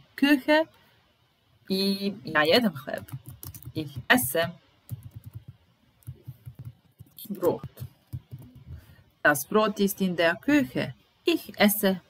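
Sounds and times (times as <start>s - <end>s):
person speaking: 1.7s - 12.0s.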